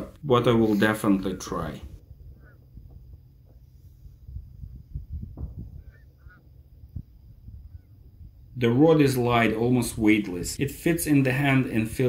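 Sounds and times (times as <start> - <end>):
wind rumble on microphone: 1.6 - 8.6
short bird calls: 5.7 - 6.6.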